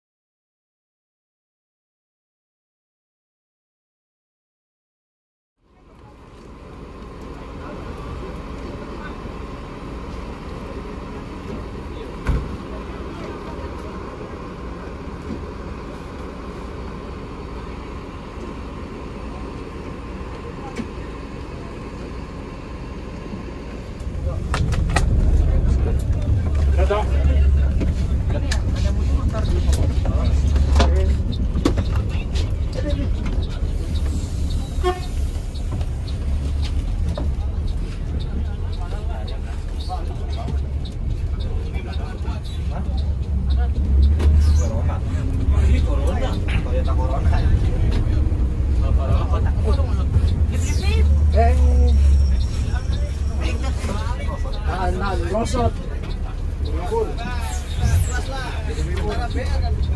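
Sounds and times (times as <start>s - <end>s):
bus diesel engine rumble: 5.6s - 59.9s.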